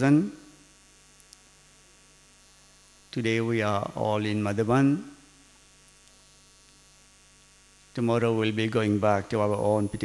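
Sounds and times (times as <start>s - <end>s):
faint mains hum: 0.0s - 10.0s
man's voice: 8.0s - 10.0s.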